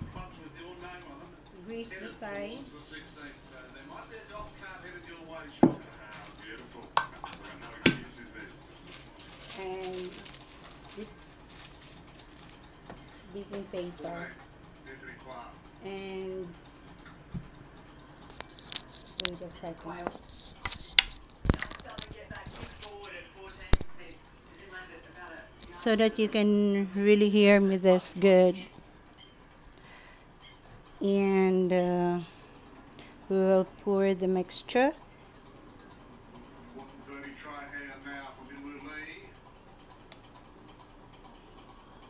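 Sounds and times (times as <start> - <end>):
cooking oil spray hiss: 2.6 - 4.9.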